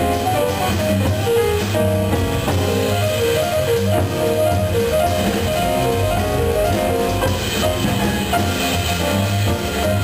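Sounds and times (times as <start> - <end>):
bass: 0.0 - 10.0
drum kit: 0.0 - 10.0
piano notes: 0.0 - 10.0.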